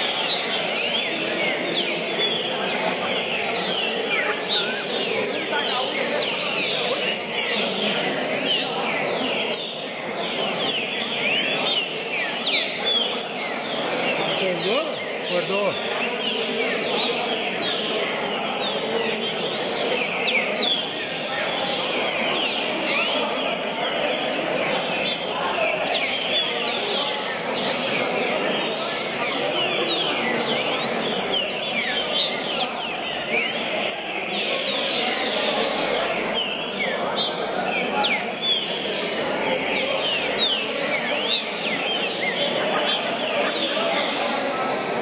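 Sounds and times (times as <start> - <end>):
caged birds singing: 0.0 - 45.0
crowd noise in large hall: 0.0 - 45.0
murmur of voices: 0.0 - 45.0.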